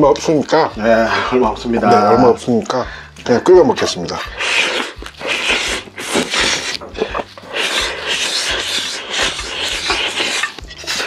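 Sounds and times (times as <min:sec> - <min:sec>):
person slurping food: 0:04.2 - 0:11.0.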